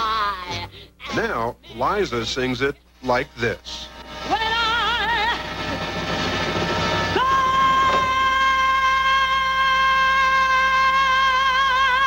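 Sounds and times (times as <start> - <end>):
live band playing: 3.7 - 8.7
woman singing with vibrato: 4.2 - 12.0.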